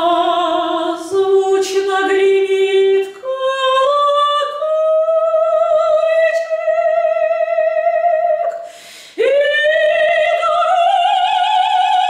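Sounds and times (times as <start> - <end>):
woman singing operatically: 0.0 - 12.0.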